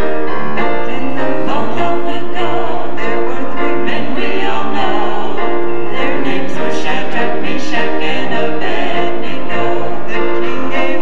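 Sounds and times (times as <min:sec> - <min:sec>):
quartet singing in harmony: 0:00.0 - 0:11.0.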